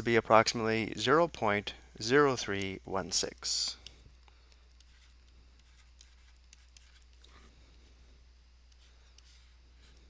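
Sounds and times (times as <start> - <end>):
low steady hum: 0.0 - 10.0
stylus ticking on pen tablet: 1.1 - 1.8, 2.5 - 7.3, 8.7 - 10.0.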